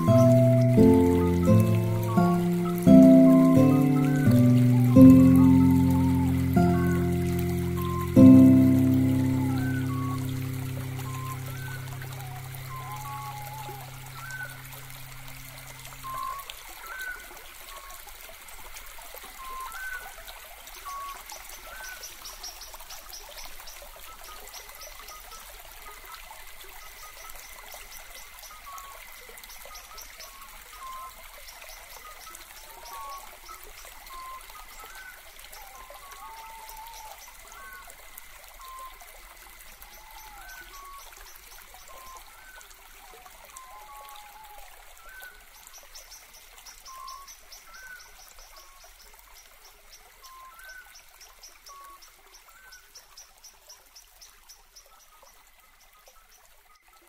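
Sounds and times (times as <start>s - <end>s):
small birds chirping: 0.0s - 14.6s
trickle of running water: 0.0s - 57.0s.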